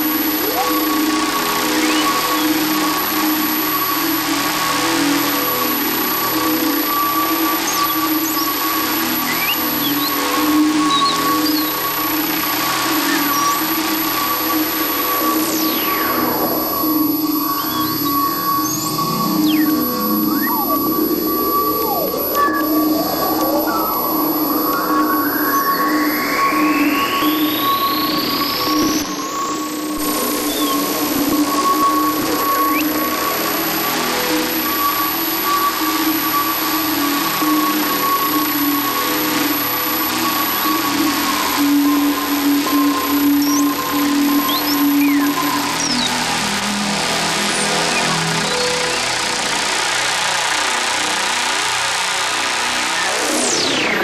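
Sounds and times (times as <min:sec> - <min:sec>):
electronic synthesizer music: 0:00.0 - 0:04.0, 0:14.7 - 0:35.5
sustained synth tones: 0:00.0 - 0:04.1.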